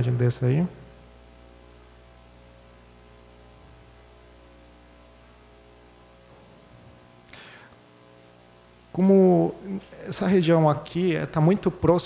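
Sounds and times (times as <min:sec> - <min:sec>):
electrical mains hum with hiss: 0:00.0 - 0:12.0.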